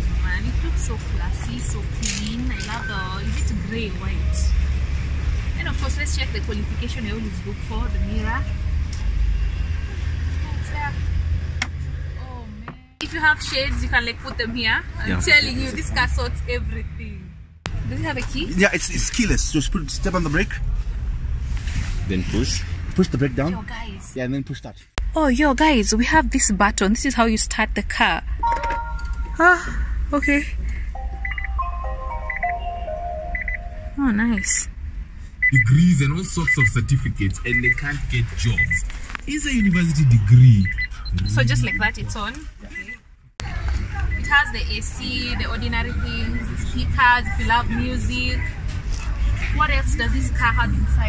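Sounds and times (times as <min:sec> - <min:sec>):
electronic power-on chime: 0:31.0 - 0:34.1
quick triple beep: 0:31.0 - 0:34.6, 0:39.6 - 0:42.0.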